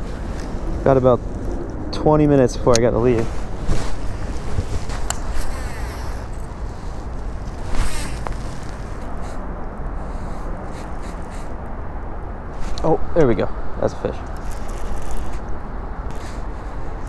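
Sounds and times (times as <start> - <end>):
wind on microphone: 0.0 - 12.8
fishing rod and reel casting: 3.0 - 9.4, 10.0 - 11.6, 14.2 - 17.0.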